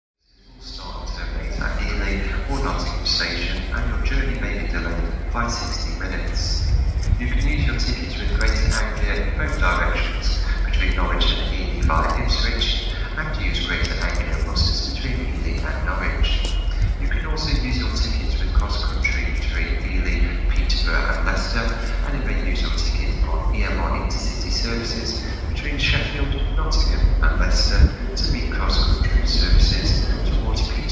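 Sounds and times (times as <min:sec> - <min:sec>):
steady low rumble: 0:00.2 - 0:30.9
indistinct voices: 0:00.4 - 0:30.9.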